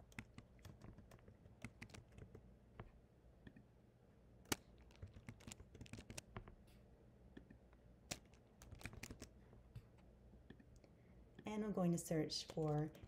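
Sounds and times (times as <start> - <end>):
faint typing on keyboard: 0.0 - 3.7, 4.4 - 6.8, 7.4 - 11.6, 12.2 - 13.0.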